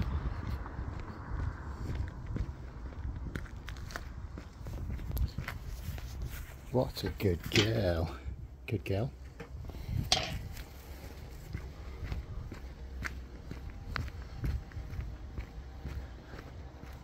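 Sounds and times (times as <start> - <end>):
footsteps on tarmac: 0.0 - 8.2, 8.9 - 17.0.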